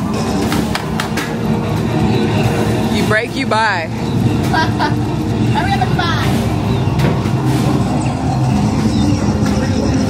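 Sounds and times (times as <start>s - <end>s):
low rumble of hall noise: 0.0s - 10.0s.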